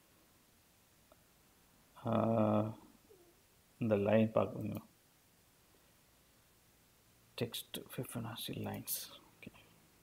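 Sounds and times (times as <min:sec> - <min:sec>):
man speaking: 0:02.0 - 0:02.8, 0:03.8 - 0:04.9, 0:07.4 - 0:09.2
man saying uhh: 0:02.0 - 0:02.9.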